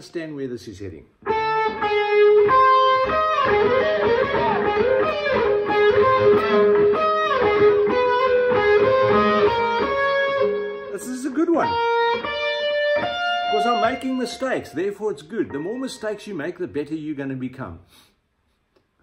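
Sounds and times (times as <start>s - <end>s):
electric guitar single-note run: 1.3s - 10.9s, 11.6s - 14.8s.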